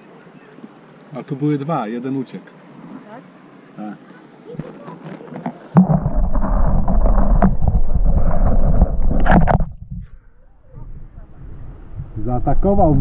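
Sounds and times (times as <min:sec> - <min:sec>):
sudden knock: 0:05.8 - 0:10.0.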